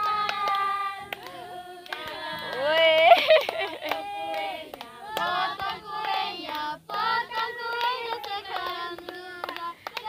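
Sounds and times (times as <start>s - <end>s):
group singing together: 0.0s - 3.0s, 3.8s - 10.0s
hand clapping: 0.0s - 10.0s.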